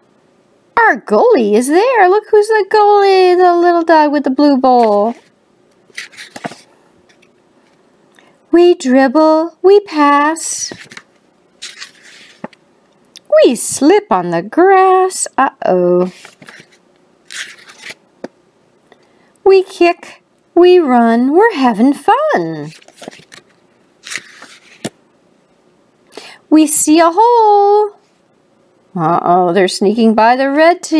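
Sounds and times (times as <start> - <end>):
paper rustling: 4.8 - 5.3, 5.9 - 7.8, 10.7 - 12.6, 16.0 - 18.0, 22.7 - 25.0
book page flicking: 5.9 - 7.2, 10.7 - 12.6, 22.8 - 25.0.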